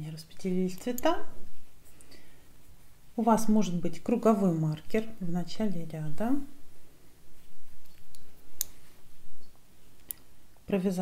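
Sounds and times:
metal knitting needles clicking: 0:00.7 - 0:01.1.

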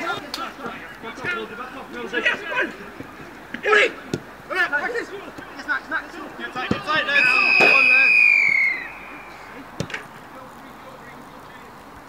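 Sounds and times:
players shouting: 0:00.0 - 0:11.7
long whistle blast: 0:07.1 - 0:09.4.

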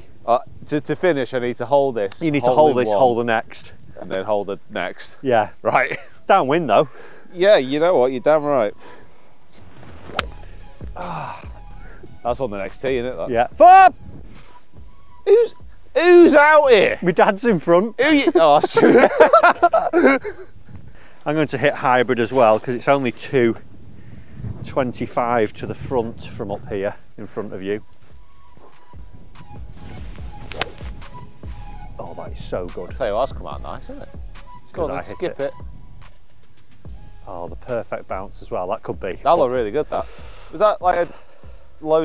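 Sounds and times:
wind rumble on microphone: 0:00.0 - 0:01.2, 0:13.9 - 0:14.5, 0:20.2 - 0:27.9
golf club striking ball: 0:10.0 - 0:10.6, 0:29.4 - 0:31.4.

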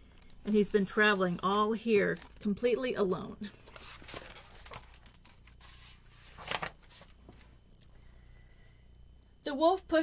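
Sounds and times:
book pages rustling: 0:03.5 - 0:07.6.

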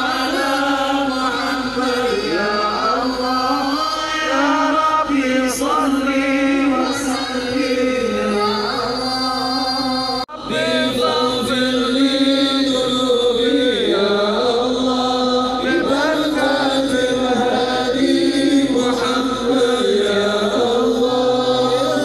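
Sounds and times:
voices chanting long held notes: 0:00.0 - 0:22.0.

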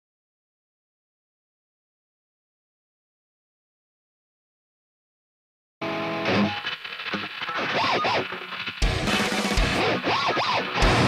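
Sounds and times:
electric guitar chord and picked notes: 0:05.8 - 0:11.0.

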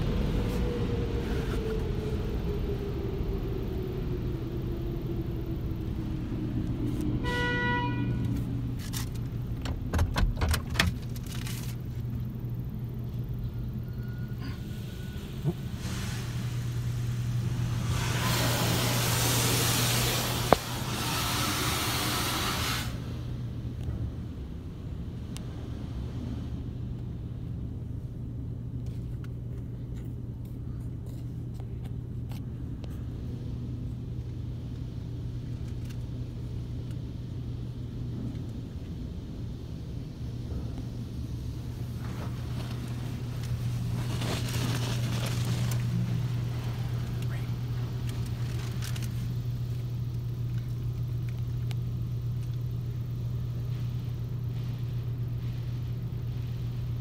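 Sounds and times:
car wash machinery hum: 0:00.0 - 0:57.0
rushing hiss of spray or blowers: 0:14.6 - 0:23.2.

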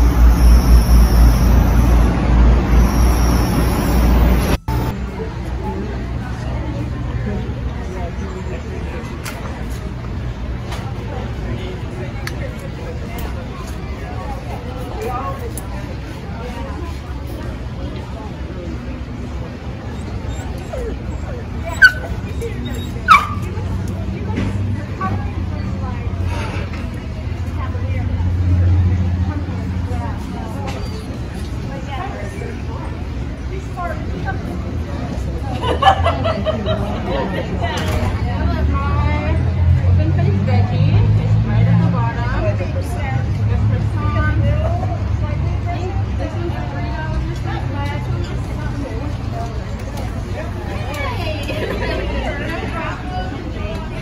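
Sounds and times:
background chatter: 0:00.0 - 0:54.0.

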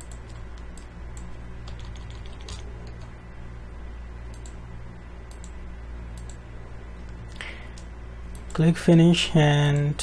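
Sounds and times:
computer mouse and keyboard clicks: 0:00.0 - 0:03.1
steady low hum: 0:00.0 - 0:10.0.

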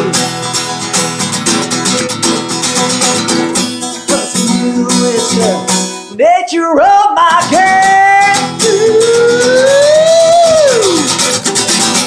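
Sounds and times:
strummed acoustic guitar: 0:00.0 - 0:12.0
man singing: 0:03.9 - 0:11.6.

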